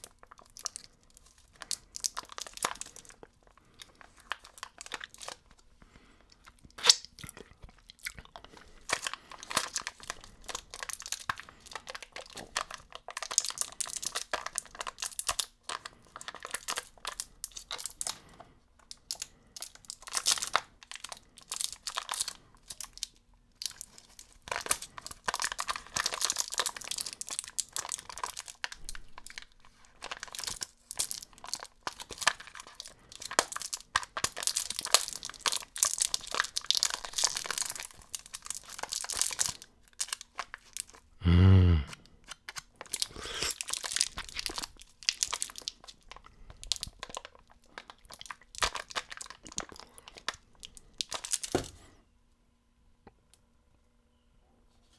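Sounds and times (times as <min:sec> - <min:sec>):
plastic packaging crinkling and tearing: 0:00.0 - 0:41.1, 0:42.0 - 0:51.8.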